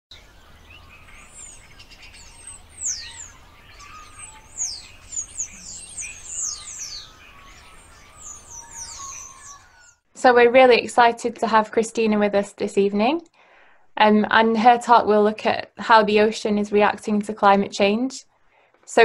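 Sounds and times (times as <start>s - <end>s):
birds chirping and singing: 0.1s - 10.0s
high falling whistles: 0.8s - 10.0s.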